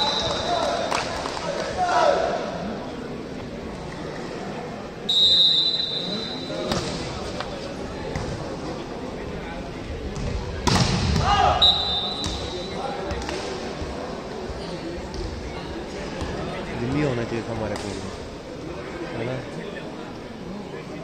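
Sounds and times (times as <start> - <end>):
referee whistle: 0.0 - 0.7, 5.1 - 6.7, 11.5 - 12.8.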